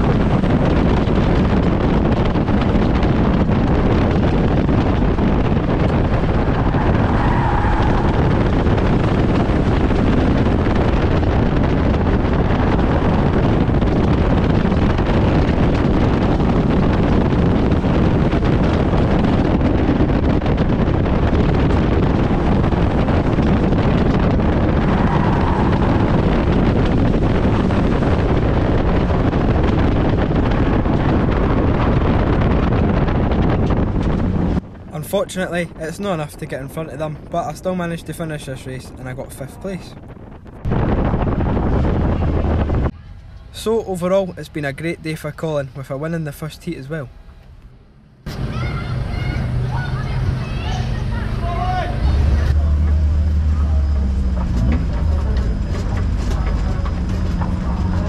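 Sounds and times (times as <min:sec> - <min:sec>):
wind buffeting microphone: 0:00.0 - 0:58.0
race car engine under load: 0:46.9 - 0:58.0.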